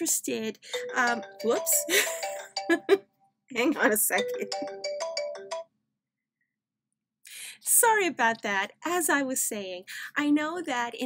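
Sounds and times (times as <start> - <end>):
phone ringtone electronic melody: 0.7 - 5.8.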